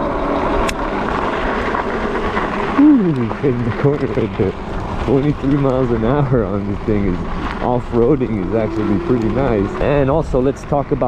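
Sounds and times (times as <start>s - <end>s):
tyres rolling on dirt path: 0.0s - 11.0s
wind on microphone: 0.0s - 11.0s
person speaking: 2.8s - 4.5s, 5.1s - 10.6s.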